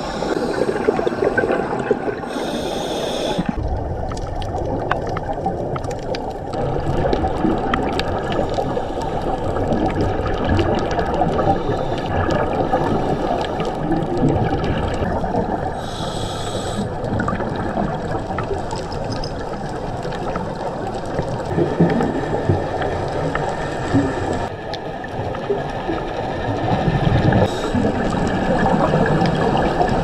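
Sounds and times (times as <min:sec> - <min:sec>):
muffled underwater rushing: 0:00.0 - 0:30.0
scattered clicks and crackles: 0:03.3 - 0:30.0.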